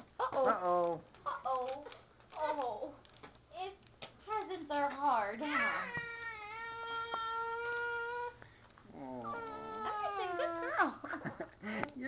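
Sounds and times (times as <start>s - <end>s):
infant crying: 5.4s - 8.4s, 9.0s - 10.8s.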